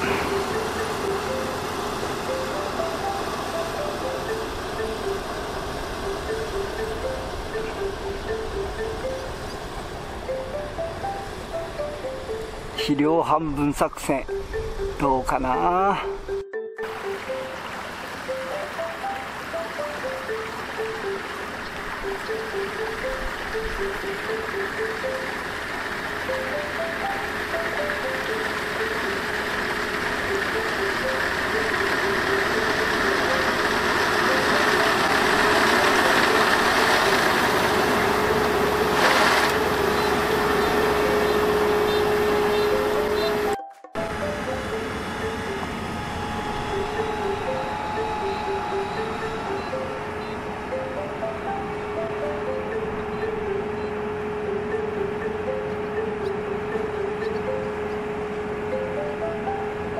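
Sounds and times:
background music with stepping melody: 0.0s - 13.0s, 14.3s - 59.9s
combine harvester running: 0.0s - 59.9s.

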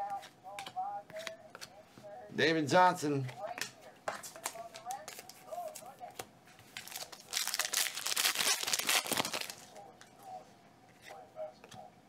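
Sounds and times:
cards clicking: 0.0s - 1.7s
foil wrapper tearing and crinkling: 6.8s - 9.7s.

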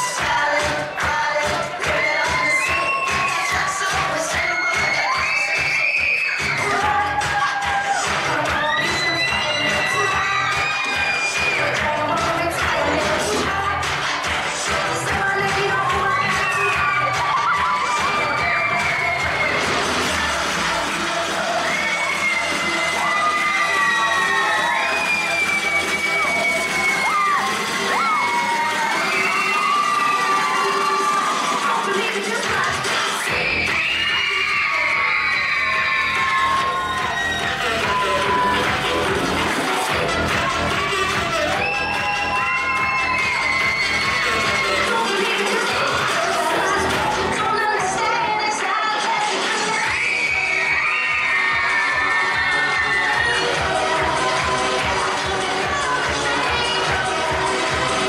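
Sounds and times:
children shouting and cheering: 0.0s - 58.0s
loud dance music: 0.0s - 58.0s.

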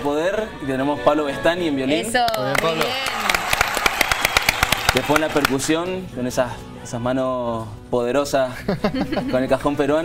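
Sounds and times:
people clapping: 2.2s - 5.9s.

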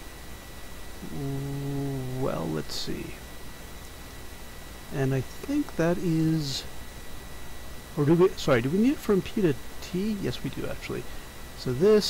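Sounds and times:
man humming: 1.0s - 3.1s.

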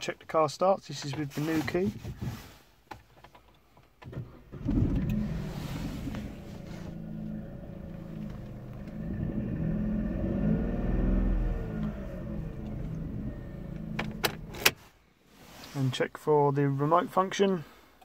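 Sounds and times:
car engine running: 4.5s - 14.7s.

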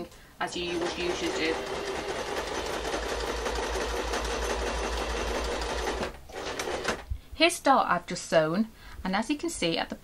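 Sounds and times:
sewing machine running: 0.5s - 7.1s.

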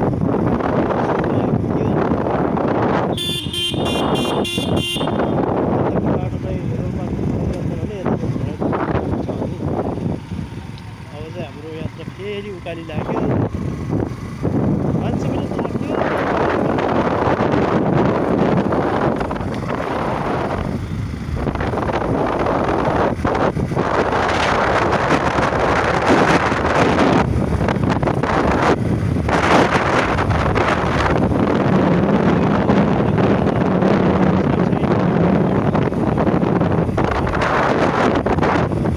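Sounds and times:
low engine hum: 0.0s - 38.9s
road noise: 0.0s - 38.9s
wind rushing over microphone: 0.0s - 38.9s.

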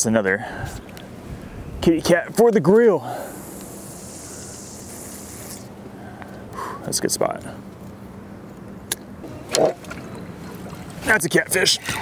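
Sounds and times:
light wind hiss: 0.0s - 12.0s.

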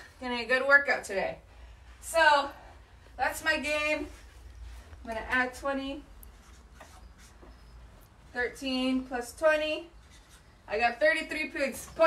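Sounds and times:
pen scratching on paper: 6.3s - 7.7s.

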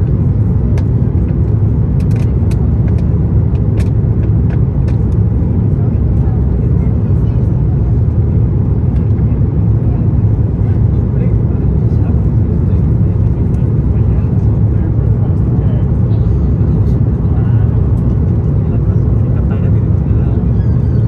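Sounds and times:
aircraft engines rumbling in cabin: 0.0s - 21.0s.

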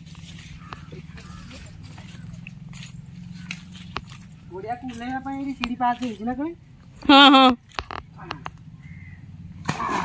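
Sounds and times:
footsteps on muddy ground: 0.0s - 7.8s.

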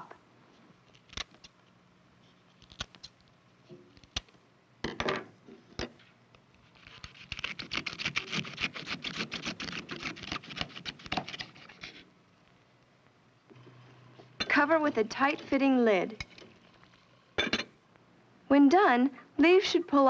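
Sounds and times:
knife sawing crunchy vegetable: 6.8s - 12.0s.

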